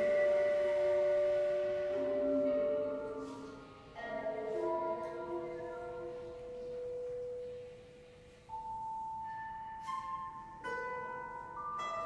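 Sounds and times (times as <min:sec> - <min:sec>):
sustained tones in chamber music: 0:00.0 - 0:12.0.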